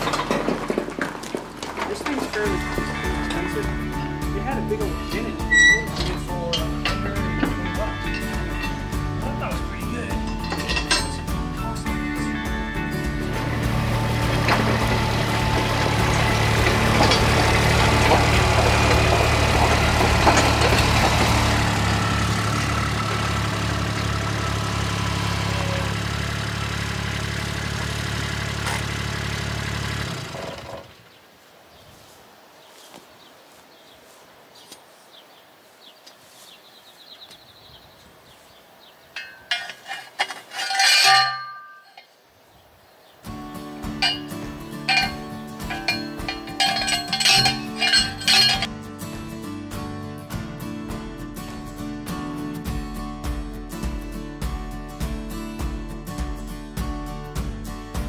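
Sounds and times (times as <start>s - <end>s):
outdoor background noise: 0.0s - 53.1s
utility vehicle engine running: 12.5s - 31.1s, 43.8s - 48.7s
loud metallic knocks: 44.0s - 48.7s.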